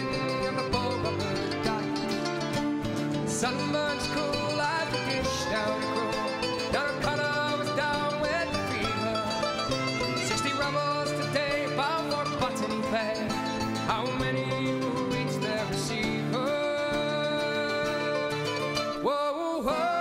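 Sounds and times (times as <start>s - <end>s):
person singing: 0.0s - 2.5s, 3.1s - 20.0s
acoustic guitars strumming: 0.0s - 20.0s
mandolin: 0.0s - 20.0s.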